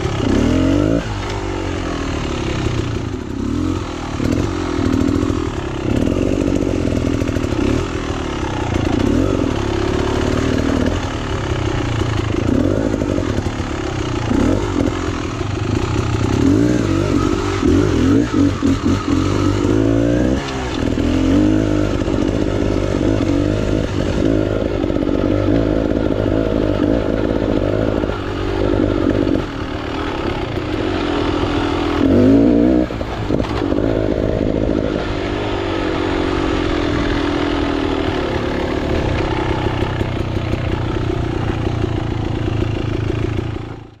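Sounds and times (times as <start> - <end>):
dirt bike engine revving: 0.0 - 44.0.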